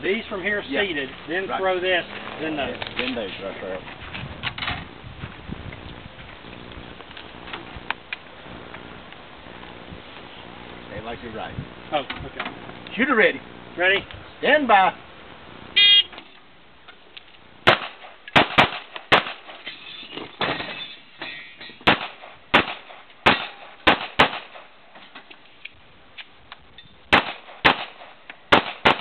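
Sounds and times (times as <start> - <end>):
pistol shots: 17.6 - 19.6, 21.8 - 24.8, 27.1 - 29.0.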